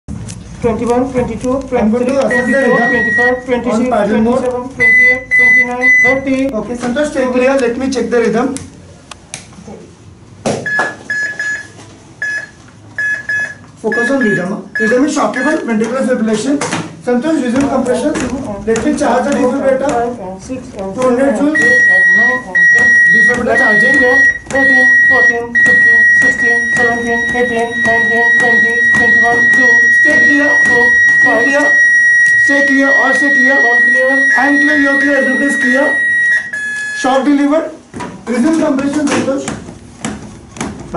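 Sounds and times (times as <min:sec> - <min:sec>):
high-pitched electronic beeps: 0:02.3 - 0:03.5, 0:04.8 - 0:06.3, 0:10.7 - 0:15.7, 0:21.5 - 0:37.2
defibrillator high-pitched tone: 0:02.3 - 0:03.6, 0:04.8 - 0:06.3, 0:10.7 - 0:15.7, 0:21.4 - 0:37.3.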